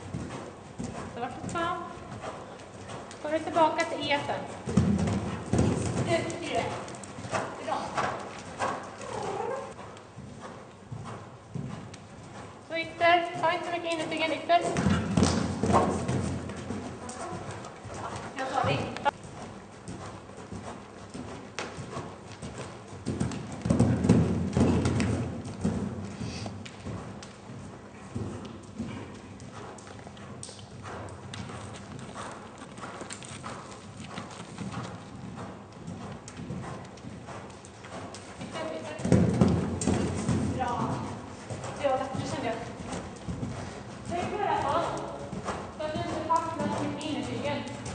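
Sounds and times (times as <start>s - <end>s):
horse hoofbeats on sand: 0.0s - 47.9s.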